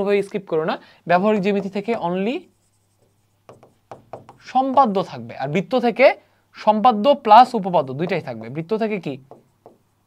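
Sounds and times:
man talking: 0.0 - 2.5, 4.4 - 9.3
stylus scratching on screen: 1.3 - 5.1.

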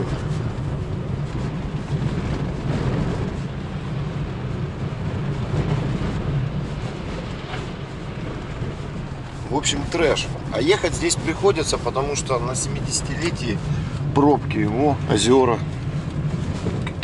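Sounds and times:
car engine and tyre rumble: 0.0 - 17.0.

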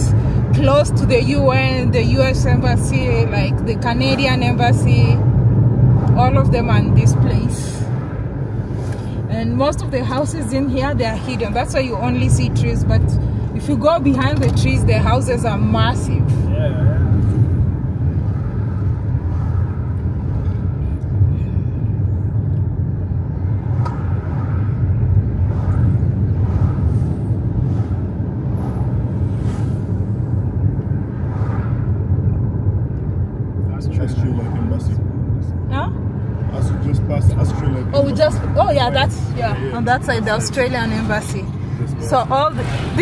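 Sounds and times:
car road and engine rumble: 0.0 - 43.0.

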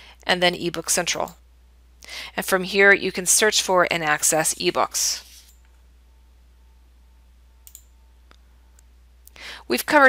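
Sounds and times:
faint steady hum: 0.0 - 10.0
computer mouse clicks: 7.6 - 7.9.

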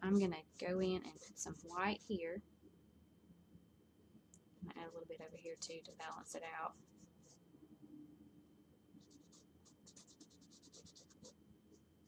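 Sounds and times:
paintbrush scratchy strokes: 0.1 - 2.2, 9.0 - 11.4.

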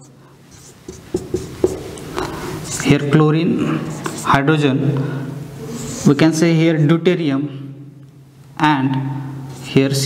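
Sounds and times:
marker pen writing on whiteboard: 0.0 - 4.6, 9.5 - 10.0.

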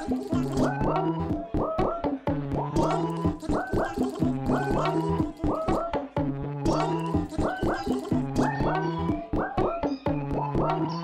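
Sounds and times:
electronic dance music: 0.0 - 1.3, 2.7 - 5.9, 6.6 - 9.1.

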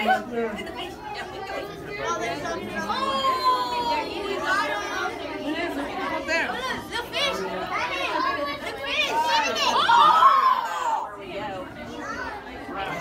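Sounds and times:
crowd chattering excitedly: 0.0 - 13.0.

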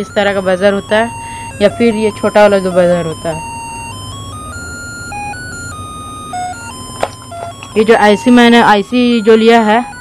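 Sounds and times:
electronic ringtone-like melody: 0.0 - 10.0.

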